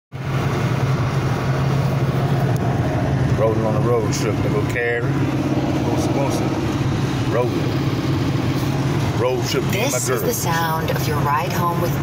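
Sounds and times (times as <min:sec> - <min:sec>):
car road and engine noise: 0:00.1 - 0:12.0.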